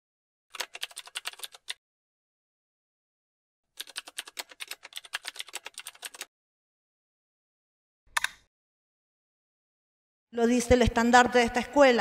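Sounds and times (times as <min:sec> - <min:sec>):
keystroke clicks: 0:00.5 - 0:01.8, 0:03.8 - 0:06.3.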